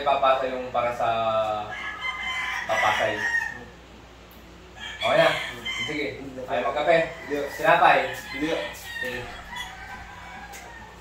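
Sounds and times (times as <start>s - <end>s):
rooster crowing: 1.5s - 3.8s, 4.7s - 11.0s.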